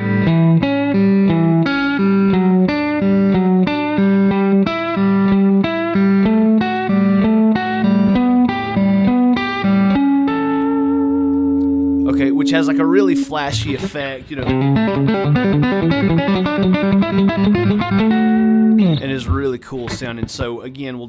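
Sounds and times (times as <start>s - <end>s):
electric guitar plucked notes: 0.0s - 20.0s.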